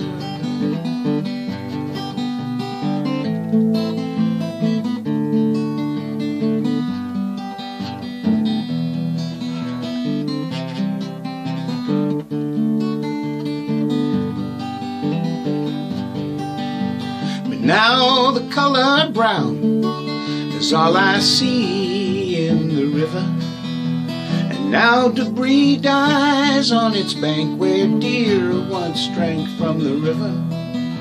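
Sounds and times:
acoustic guitar strumming: 0:00.0 - 0:31.0.

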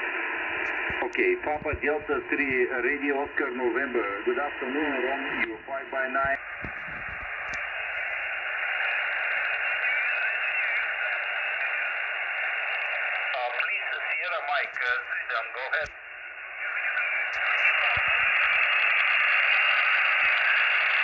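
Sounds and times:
radio band hiss: 0:00.0 - 0:21.0
weak voice over radio: 0:00.8 - 0:07.2, 0:08.8 - 0:16.0, 0:16.6 - 0:21.0.

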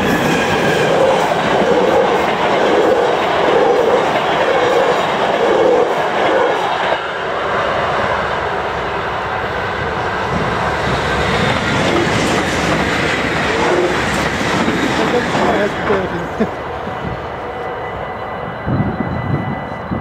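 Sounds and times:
train coaches clickety-clack: 0:00.0 - 0:20.0.

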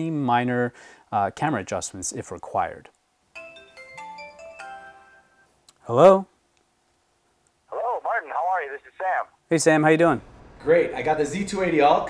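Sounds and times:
phone ringtone chiming melody: 0:03.3 - 0:05.5.

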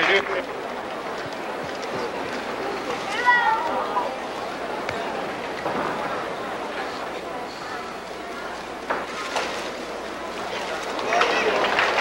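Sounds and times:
arena crowd murmur: 0:00.0 - 0:12.0.

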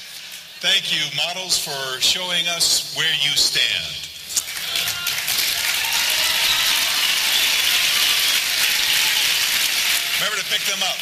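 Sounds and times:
audience applauding: 0:04.3 - 0:11.0.

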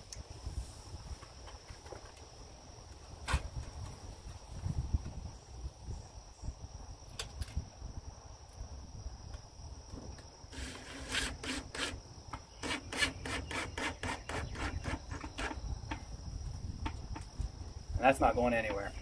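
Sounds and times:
insects buzzing: 0:00.0 - 0:19.0
cordless drill driving screw: 0:10.5 - 0:12.0.

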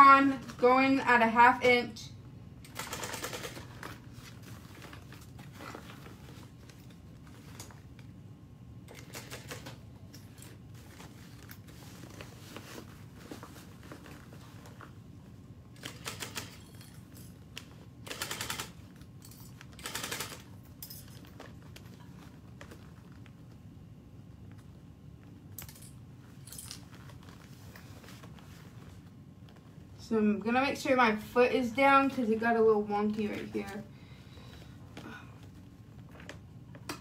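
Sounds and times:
low steady hum: 0:00.0 - 0:37.0.

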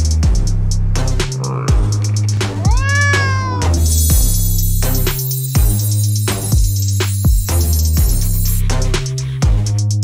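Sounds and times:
cat meowing: 0:02.4 - 0:04.4
electronic music with steady beat: 0:04.1 - 0:09.2.

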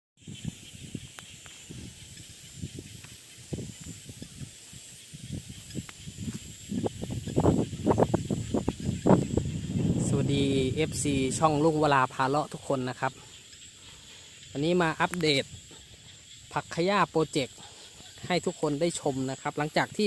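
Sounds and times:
wind and handling on microphone: 0:00.2 - 0:13.2
frogs and insects calling: 0:00.2 - 0:20.0.

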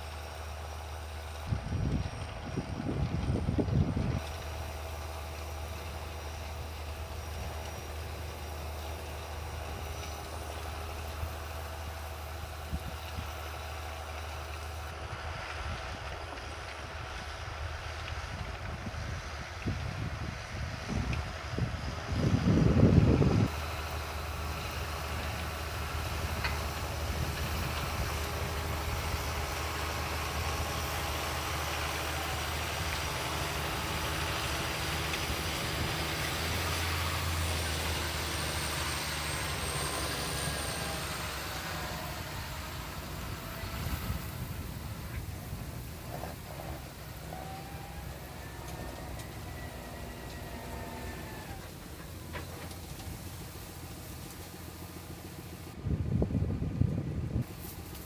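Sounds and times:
tractor diesel engine under load: 0:00.0 - 0:58.0
wind gust on microphone: 0:18.3 - 0:23.6, 0:42.4 - 0:51.6, 0:55.7 - 0:57.8.

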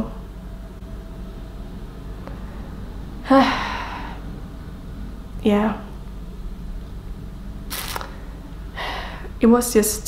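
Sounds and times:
low steady hum: 0:00.0 - 0:10.0
woman breathing: 0:02.2 - 0:04.3, 0:07.8 - 0:09.4.

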